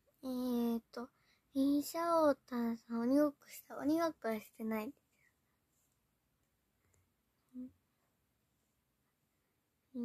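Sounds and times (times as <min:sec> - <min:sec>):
girl humming mm: 0:07.5 - 0:07.8.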